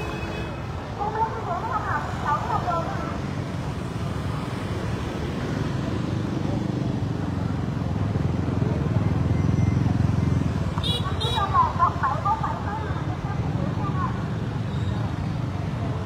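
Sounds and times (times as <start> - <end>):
voices: 0.0 - 3.4, 8.2 - 16.0
motorbike traffic engine hum: 0.0 - 16.0.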